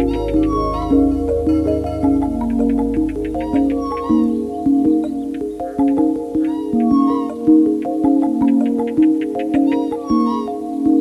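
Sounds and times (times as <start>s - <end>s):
short gliding high tone: 0.0s - 4.7s
instrumental music sustained notes: 0.0s - 11.0s.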